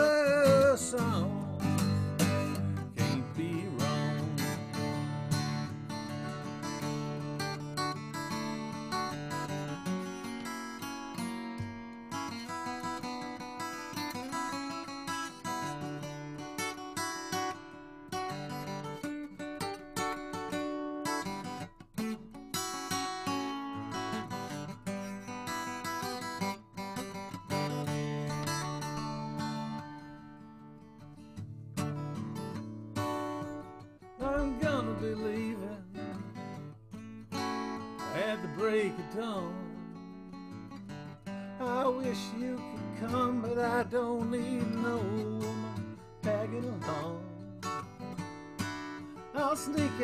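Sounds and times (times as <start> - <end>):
country-rock instrumental: 0.0 - 50.0
strummed acoustic guitar chords: 0.0 - 50.0.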